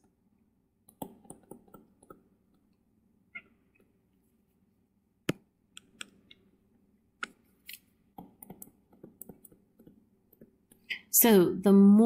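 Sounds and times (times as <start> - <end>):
stylus tapping on tablet screen: 0.9 - 2.3, 8.2 - 10.9.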